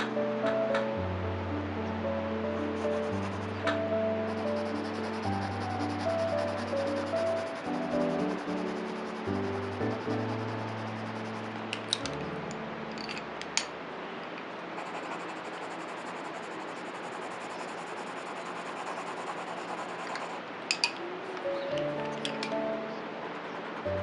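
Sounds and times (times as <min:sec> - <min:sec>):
soft background music: 0:00.0 - 0:14.3, 0:15.5 - 0:24.0
pencil shading on paper: 0:02.8 - 0:03.5, 0:04.2 - 0:11.6, 0:14.8 - 0:20.4.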